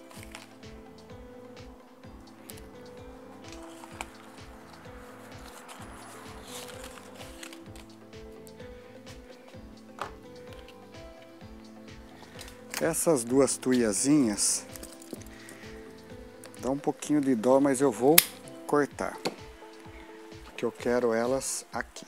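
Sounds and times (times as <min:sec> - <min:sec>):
soft background music: 0:00.0 - 0:22.0.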